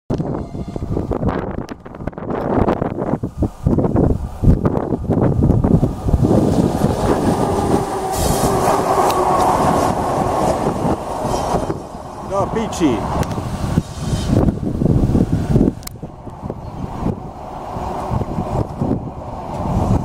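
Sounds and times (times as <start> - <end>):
locomotive rushing with hum: 0.1 - 20.0.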